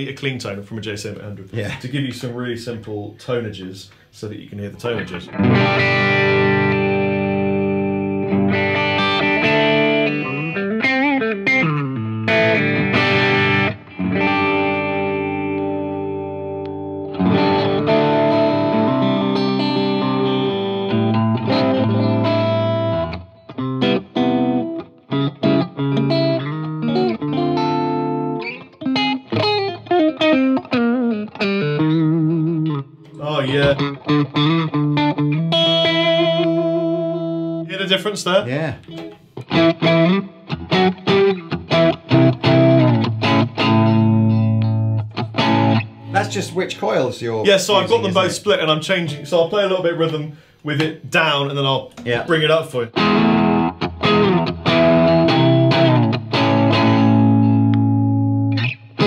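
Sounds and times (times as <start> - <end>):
electric guitar playing: 4.9 - 49.8, 52.8 - 59.0.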